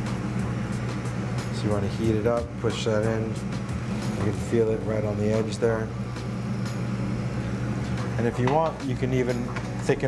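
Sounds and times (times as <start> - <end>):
torch flame hiss: 0.0 - 10.0
ventilation low hum: 0.0 - 10.0.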